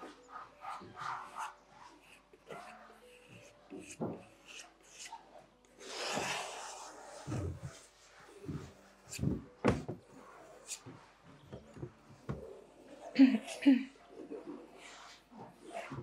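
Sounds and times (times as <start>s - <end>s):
dull knocks on wooden easel: 8.5s - 10.0s.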